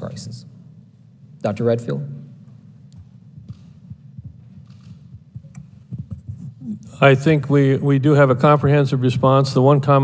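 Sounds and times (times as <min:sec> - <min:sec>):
microphone handling thumps: 0:03.0 - 0:06.6.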